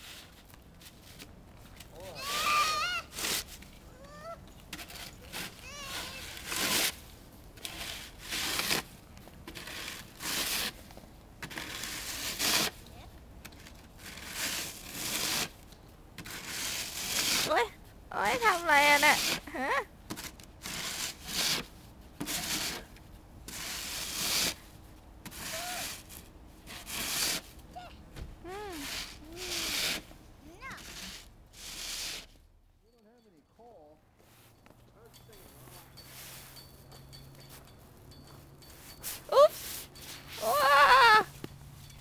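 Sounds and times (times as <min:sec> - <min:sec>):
toddler high-pitched calls: 0:02.0 - 0:03.1, 0:03.9 - 0:04.4, 0:05.6 - 0:06.4
snow being scraped: 0:02.2 - 0:03.6, 0:04.8 - 0:08.9, 0:09.5 - 0:10.8, 0:11.4 - 0:12.9, 0:14.0 - 0:15.6, 0:16.2 - 0:17.7, 0:18.4 - 0:19.5, 0:20.6 - 0:22.9, 0:23.5 - 0:24.7, 0:25.3 - 0:27.6, 0:28.5 - 0:32.4, 0:35.7 - 0:36.6, 0:38.7 - 0:41.3.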